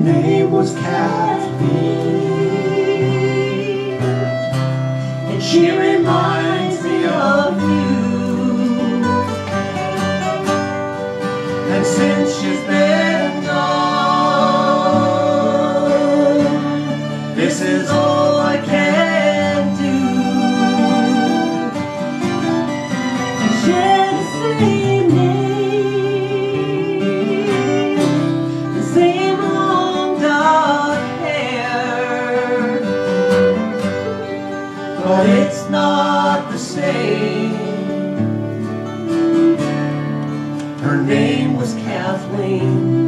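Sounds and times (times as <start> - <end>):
person singing: 0.0 - 10.6, 11.4 - 38.2, 40.8 - 43.0
acoustic guitars strummed: 0.0 - 43.0
fiddle bowed: 0.0 - 43.0.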